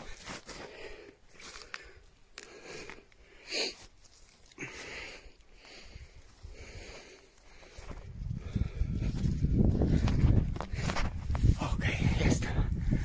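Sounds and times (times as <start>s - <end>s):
footsteps: 0.0s - 2.0s, 5.6s - 12.1s
wind buffeting microphone: 7.7s - 13.0s.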